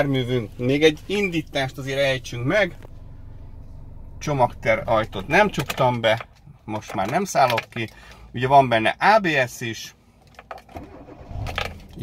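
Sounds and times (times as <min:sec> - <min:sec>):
car engine cranking and starting: 0:00.0 - 0:08.4, 0:10.2 - 0:12.0.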